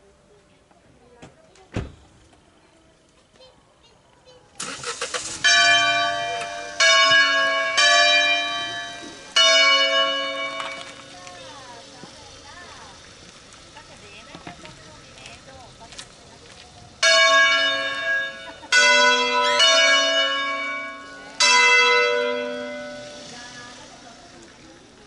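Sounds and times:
church bells ringing: 5.4s - 11.8s, 17.0s - 24.3s.

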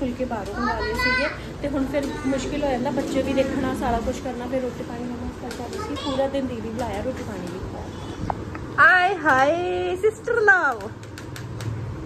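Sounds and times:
woman talking: 0.0s - 11.0s
children playing: 0.3s - 3.7s, 5.5s - 6.7s
children's high-pitched voices: 0.4s - 2.6s, 5.5s - 6.5s.

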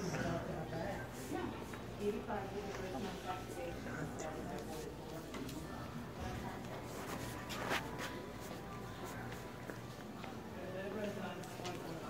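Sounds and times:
steady background hum: 0.0s - 12.0s
footsteps on tiled floor: 1.2s - 12.0s.

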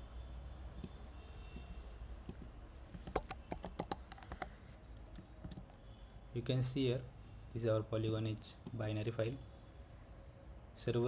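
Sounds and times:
keyboard keystrokes: 2.2s - 5.7s.

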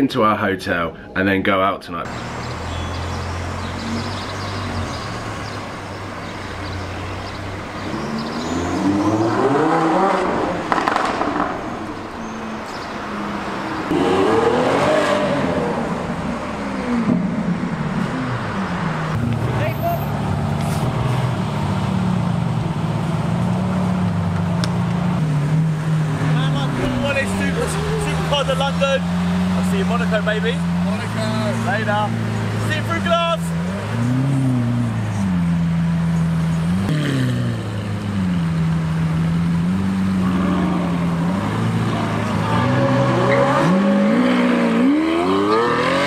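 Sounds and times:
car engines revving: 2.0s - 46.0s.

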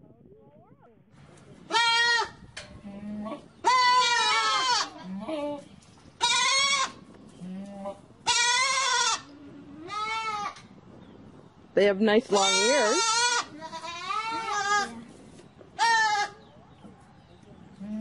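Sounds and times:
goats bleating: 1.7s - 5.6s, 6.2s - 7.0s, 7.6s - 10.6s, 12.3s - 15.0s.

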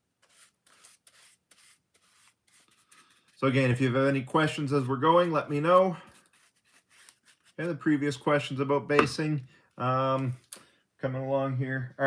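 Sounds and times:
paintbrush strokes: 0.0s - 8.4s.

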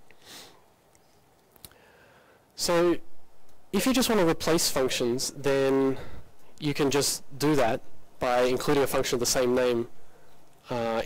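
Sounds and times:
man sniffing: 0.2s - 0.7s.

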